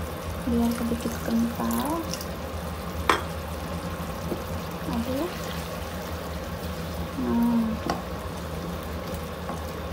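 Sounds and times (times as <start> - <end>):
sauce simmering in a wok: 0.0 - 9.9.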